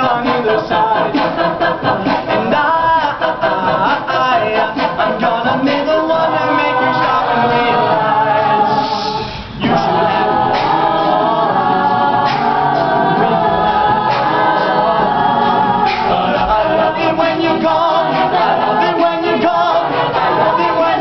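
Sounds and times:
male lead vocal: 0.0 - 11.6, 12.3 - 21.0
a cappella group singing: 0.0 - 21.0.

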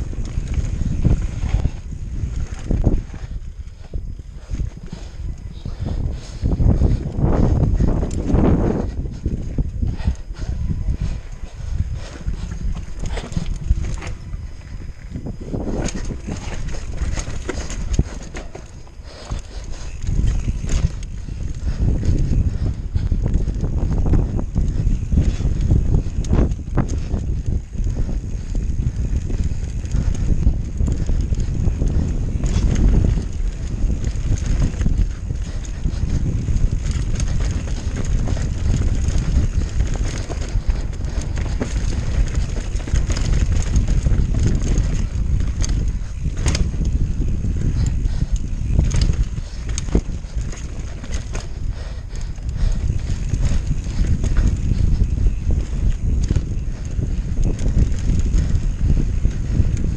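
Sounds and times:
bike rattling over rocks: 0.0 - 59.9
mountain bike tyre noise: 0.0 - 59.9
wind rumble on microphone: 0.0 - 59.9.

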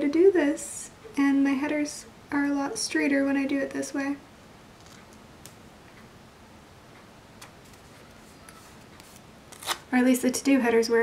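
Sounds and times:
sharp paper crackle: 7.6 - 9.9.

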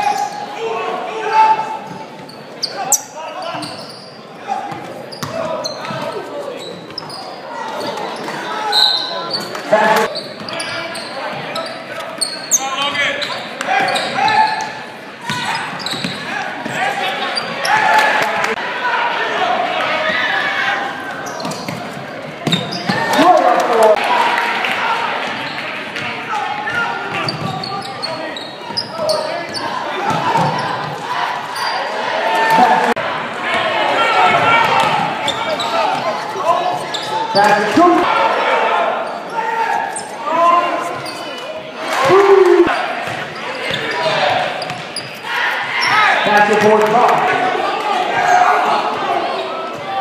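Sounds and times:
crowd shouting and cheering: 0.0 - 50.0.

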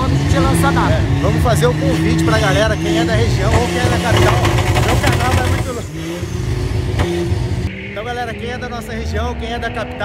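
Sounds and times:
man talking: 0.0 - 6.0, 8.0 - 10.0
vehicle engine running: 0.0 - 7.7.

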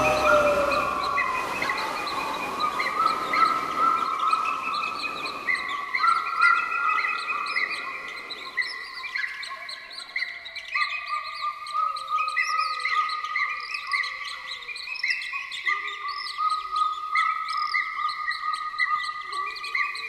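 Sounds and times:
high held tones: 0.0 - 5.5
slow falling whistle: 0.0 - 7.0
small birds chirping: 0.0 - 20.0.

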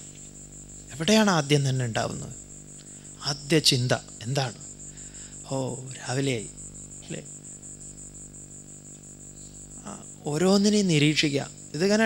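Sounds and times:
insects chirping: 0.0 - 12.0
low steady hum: 0.0 - 12.0.

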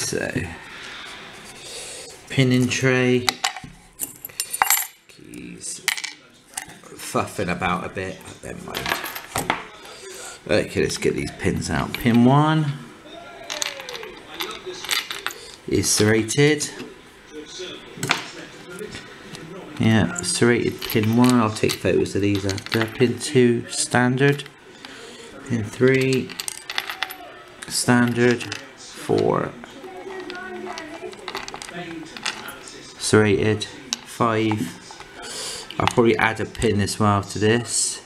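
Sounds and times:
pins dropping into wooden tray: 13.5 - 16.1, 20.7 - 23.2, 25.7 - 28.6, 29.8 - 32.6
metal pins clicking onto wood: 30.1 - 32.5.

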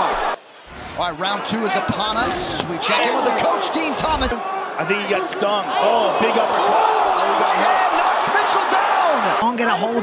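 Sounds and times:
arena crowd cheering: 0.0 - 10.0.

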